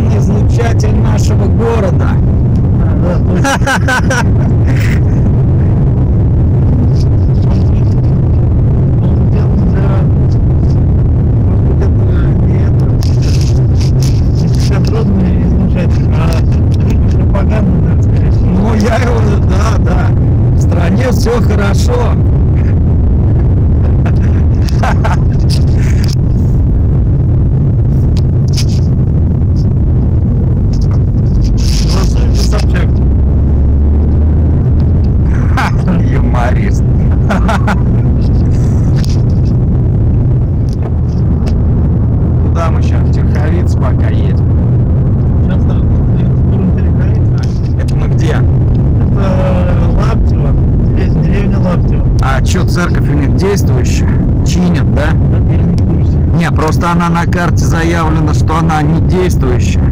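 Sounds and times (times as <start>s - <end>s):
car cabin rumble: 0.0s - 59.9s
indistinct voices: 0.0s - 59.9s.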